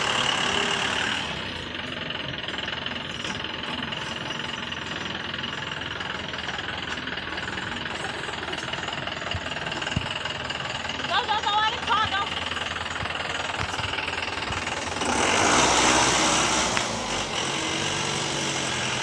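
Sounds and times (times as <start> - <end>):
pickup engine idling: 0.0 - 19.0.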